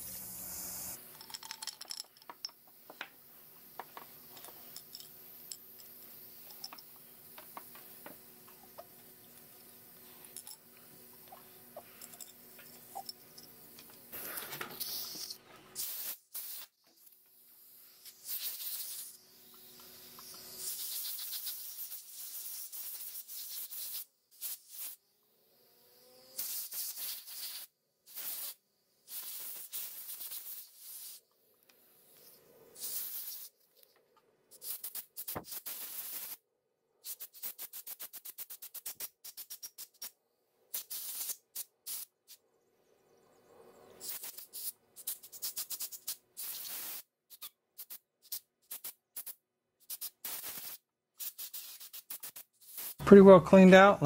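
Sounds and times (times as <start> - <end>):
short bursts of hiss: 0.0 - 1.2, 3.2 - 25.1, 26.0 - 33.9, 34.5 - 36.4, 37.0 - 42.4, 44.0 - 53.8
metal parts clicking and rattling: 1.1 - 2.7, 11.3 - 14.0.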